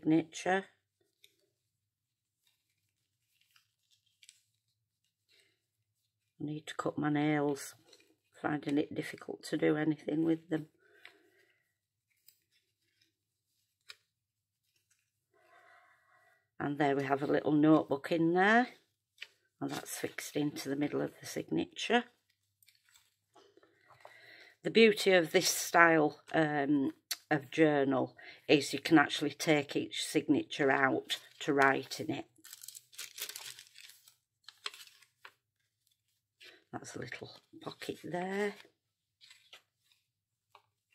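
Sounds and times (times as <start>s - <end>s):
paper pages turning: 2.3s - 6.3s, 7.5s - 9.3s, 12.0s - 15.2s, 22.2s - 23.2s, 31.0s - 40.9s
paper and ribbon clicks: 32.4s - 35.3s.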